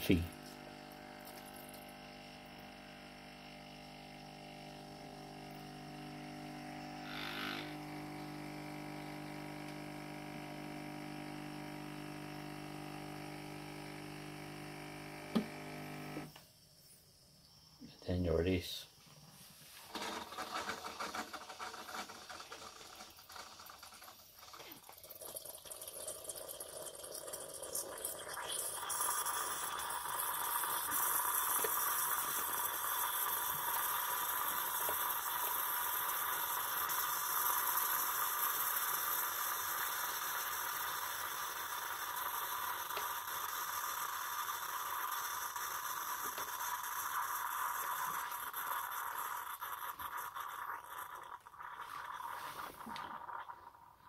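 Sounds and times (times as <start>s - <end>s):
coffee streaming into a mug: 0.1s - 16.3s, 19.9s - 54.0s
coffee machine pump rattling: 19.9s - 53.2s.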